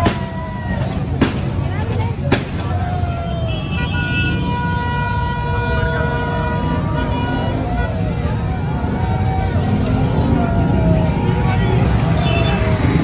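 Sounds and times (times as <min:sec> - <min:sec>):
crowd shouting: 0:00.0 - 0:13.0
vehicle horn: 0:03.5 - 0:08.0.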